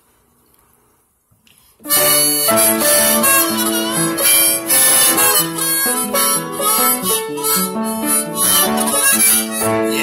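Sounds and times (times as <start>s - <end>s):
harmonica playing held notes: 1.8s - 10.0s
piano chords: 1.9s - 10.0s.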